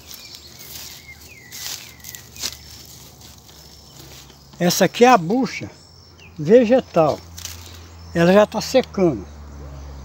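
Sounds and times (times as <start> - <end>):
dry leaves and stems rustling: 0.0 - 9.1
faint bird chirping: 0.0 - 10.0.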